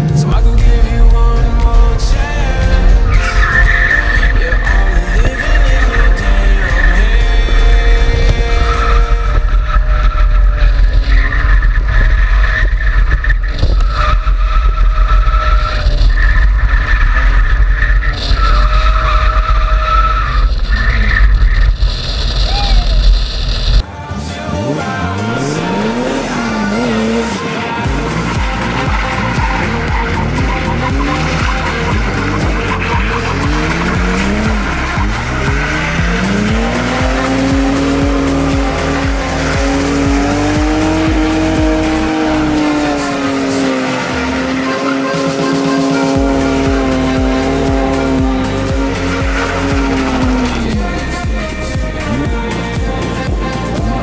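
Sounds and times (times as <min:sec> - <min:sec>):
background music with beat: 0:00.0 - 0:11.3, 0:23.8 - 0:54.0
car engine revving: 0:00.0 - 0:54.0
tyre squeal: 0:03.0 - 0:07.6, 0:08.4 - 0:23.2, 0:25.4 - 0:52.1.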